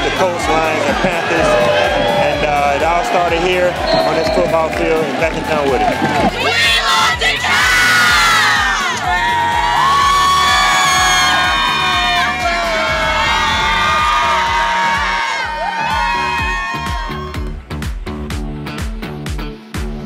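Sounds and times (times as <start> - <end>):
crowd cheering and screaming: 0.0 - 17.5.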